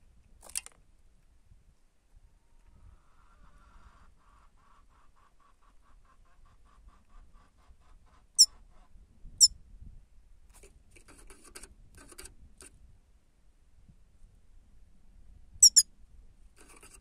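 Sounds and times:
high-pitched goldfinch calls: 0:15.6 - 0:15.8.

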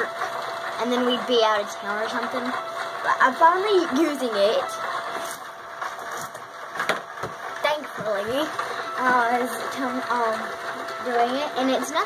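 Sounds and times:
rock tumbler motor hum: 0:00.0 - 0:12.0.

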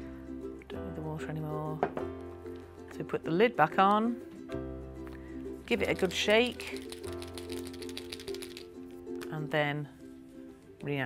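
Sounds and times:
paint pen rattling when shaken: 0:05.6 - 0:09.6.

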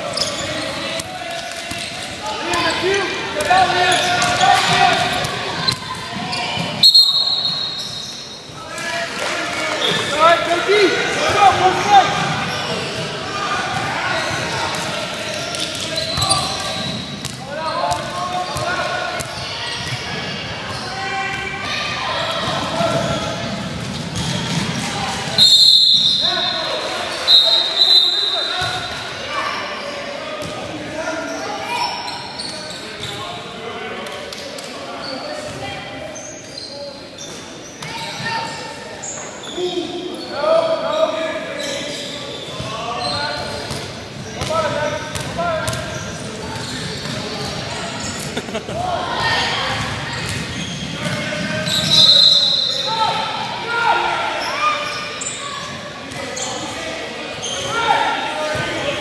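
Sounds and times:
murmur of voices: 0:00.0 - 0:59.0
referee's whistle: 0:06.8 - 0:08.4, 0:25.4 - 0:28.8, 0:51.6 - 0:52.9.

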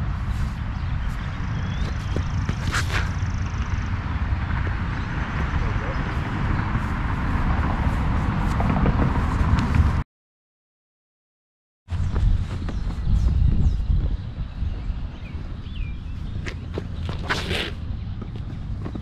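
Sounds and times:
steady low rumble: 0:00.0 - 0:10.0, 0:11.9 - 0:17.1.

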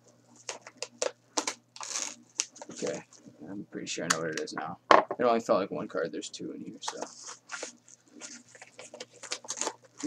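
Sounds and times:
envelope tearing: 0:01.4 - 0:03.0, 0:07.3 - 0:10.0
envelope crinkling: 0:06.8 - 0:10.0.

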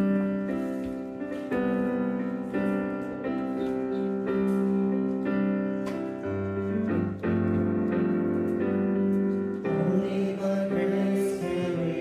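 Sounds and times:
digital piano chords: 0:00.0 - 0:12.0.

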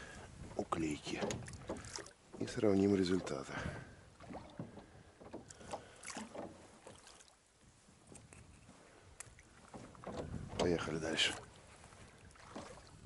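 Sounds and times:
oars splashing in water: 0:00.0 - 0:13.0.

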